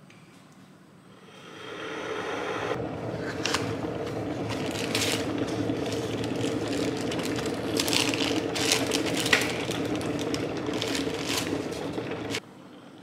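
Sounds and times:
electric kettle heating: 1.1 - 13.0.

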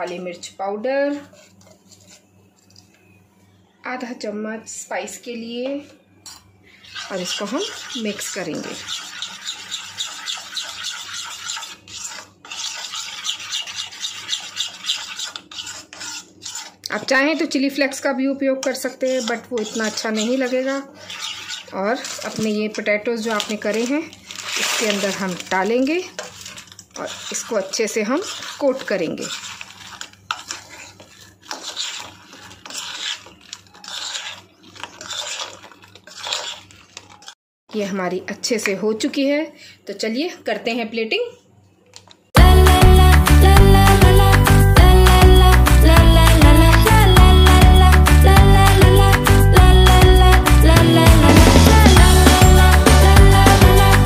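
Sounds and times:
spoon scraping sauce in bowl: 1.1 - 2.6, 6.8 - 17.9, 18.6 - 37.4.

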